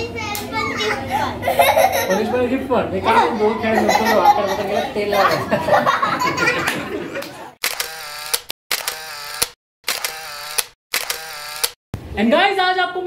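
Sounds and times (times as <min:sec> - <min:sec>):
laughter: 0:01.4 - 0:02.4, 0:03.1 - 0:07.6.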